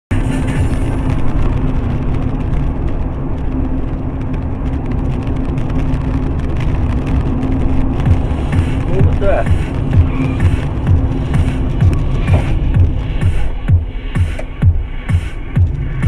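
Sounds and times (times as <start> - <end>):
car engine and tyres droning: 0.1 - 16.0
constant low hum: 0.1 - 16.0.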